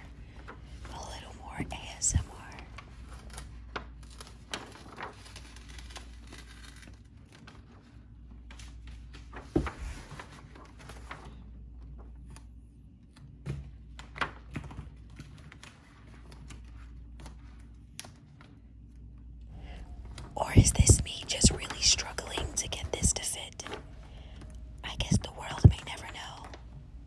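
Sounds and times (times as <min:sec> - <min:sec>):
decal sheet crinkling: 0:02.6 - 0:13.3.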